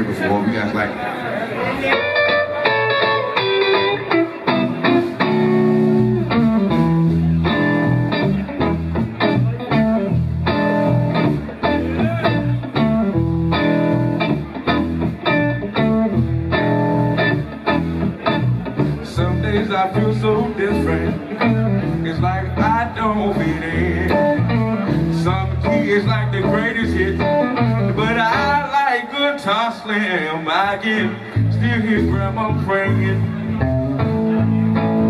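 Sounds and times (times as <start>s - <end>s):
blues band playing: 0.0s - 35.0s
electric guitar lead lines: 1.6s - 35.0s
bass notes: 2.1s - 28.8s, 30.8s - 35.0s.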